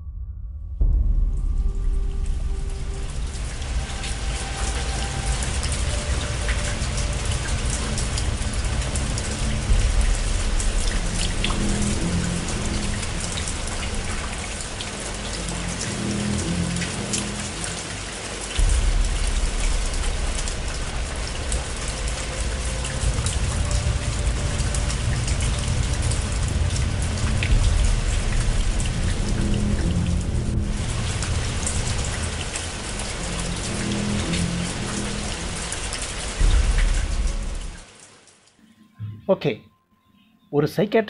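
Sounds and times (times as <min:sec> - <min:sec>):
deep low rumble: 0:00.0 - 0:17.5, 0:18.6 - 0:37.9
faint music tones: 0:00.1 - 0:41.0
rain patter: 0:01.1 - 0:38.6.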